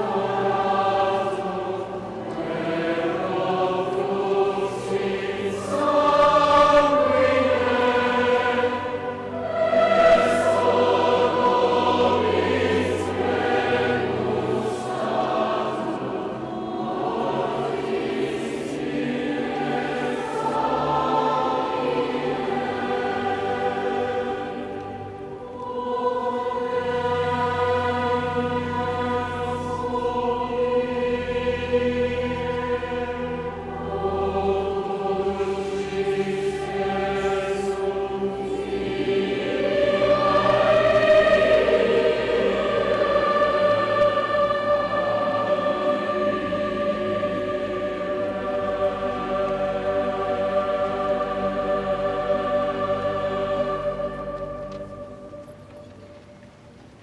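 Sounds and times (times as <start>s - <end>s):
youth choir singing: 0.0s - 55.5s.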